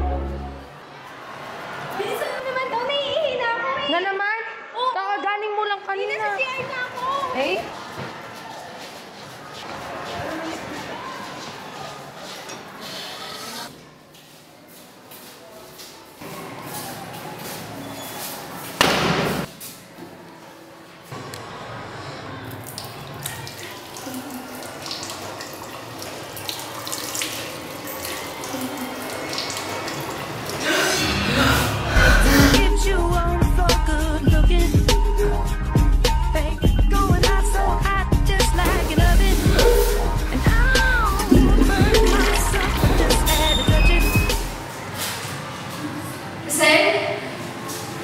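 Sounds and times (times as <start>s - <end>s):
hubbub of children's voices: 0.7s - 14.4s, 21.2s - 31.6s, 39.2s - 48.0s
water running from faucet into sink: 22.8s - 30.6s, 38.7s - 43.7s.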